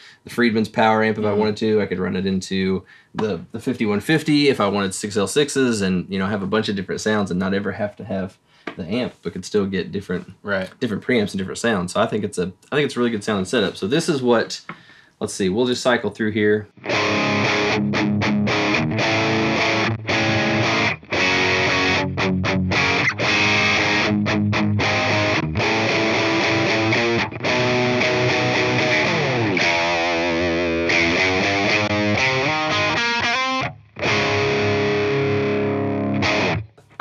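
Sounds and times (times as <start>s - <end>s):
distorted electric guitar riff: 1.1s - 1.7s, 16.8s - 37.0s.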